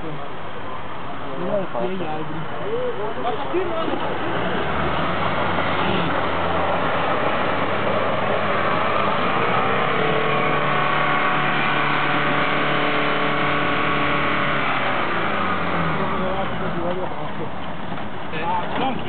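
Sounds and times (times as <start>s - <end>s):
engine at raised revs: 2.0s - 19.0s.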